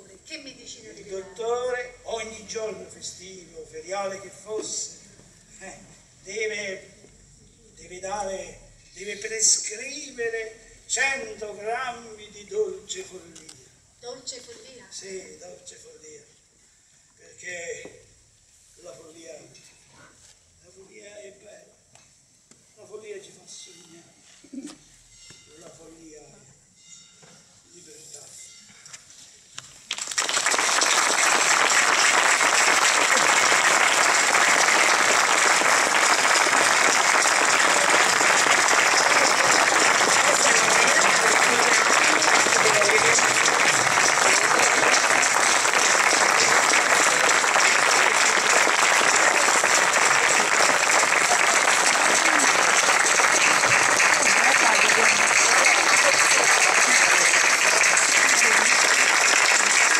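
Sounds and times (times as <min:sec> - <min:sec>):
audience applauding: 0:29.9 - 0:59.9.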